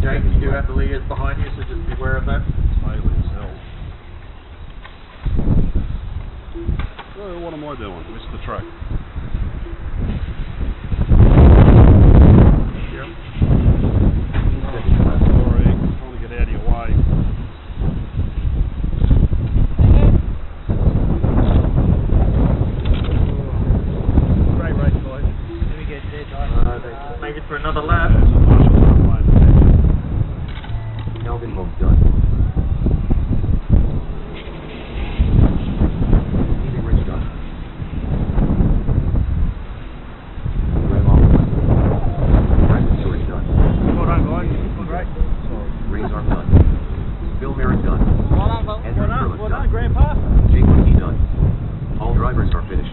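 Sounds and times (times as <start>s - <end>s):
wind buffeting microphone: 0.0s - 52.9s.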